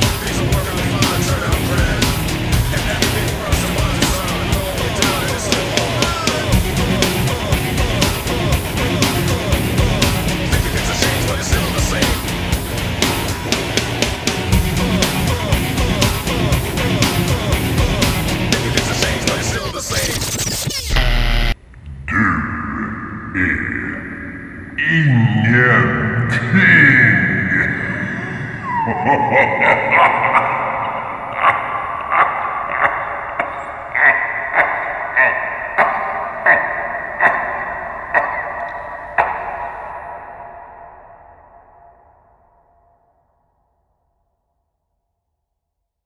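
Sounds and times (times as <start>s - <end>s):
man's low drawn-out voice: 0.0s - 12.5s, 21.9s - 28.2s
loud rock music: 0.0s - 21.6s.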